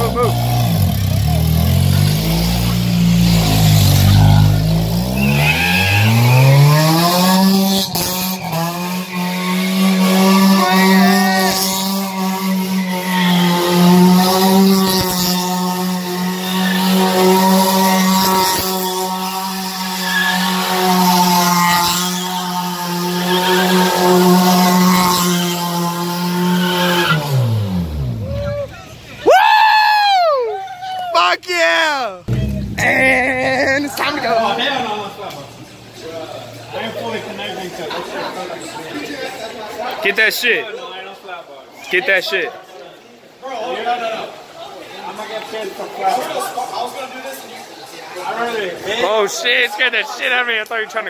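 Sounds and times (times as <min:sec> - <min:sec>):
car engine revving: 0:00.0 - 0:28.5, 0:32.2 - 0:34.9
wheels spinning on wet pavement: 0:00.0 - 0:29.4.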